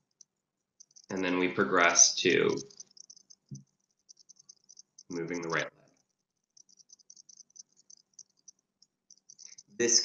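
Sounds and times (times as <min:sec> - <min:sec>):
high-pitched little chirps: 0:00.8 - 0:05.7, 0:06.5 - 0:10.0.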